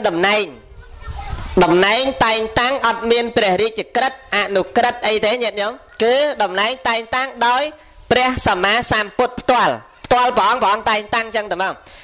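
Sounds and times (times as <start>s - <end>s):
man preaching into a microphone: 0.0s - 0.6s, 1.6s - 12.0s.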